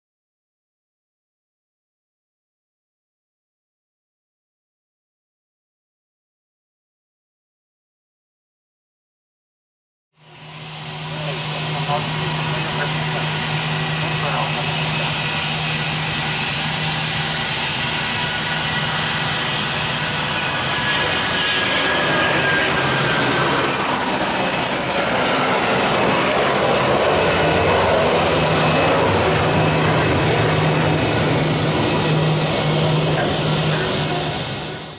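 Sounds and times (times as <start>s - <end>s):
jet engines at takeoff: 10.2s - 34.9s
high jet whine falling in pitch: 10.3s - 34.9s.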